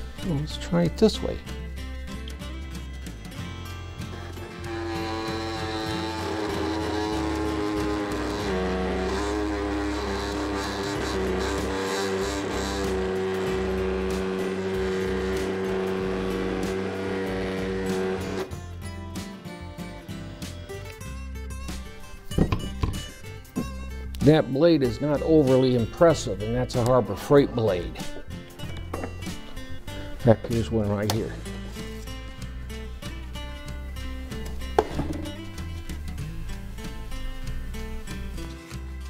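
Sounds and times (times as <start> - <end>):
oscillating tool buzzing on wood: 3.9 - 18.5.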